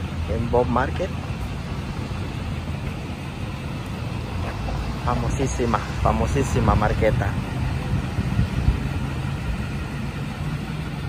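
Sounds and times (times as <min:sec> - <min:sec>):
urban street rumble: 0:00.0 - 0:11.0.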